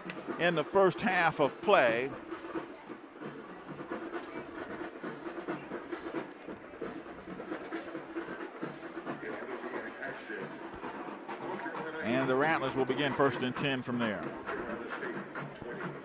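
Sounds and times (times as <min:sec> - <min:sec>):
stadium crowd din: 0:00.0 - 0:16.0.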